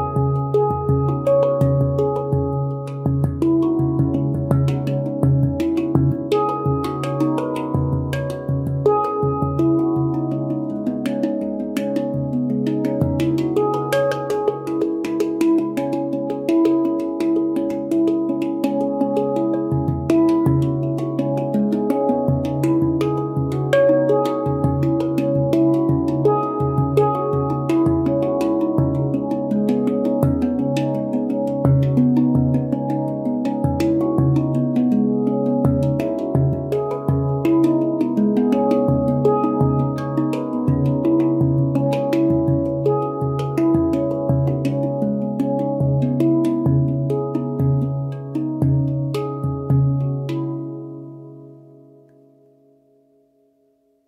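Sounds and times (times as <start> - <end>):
handpan melody: 0.0 - 53.3.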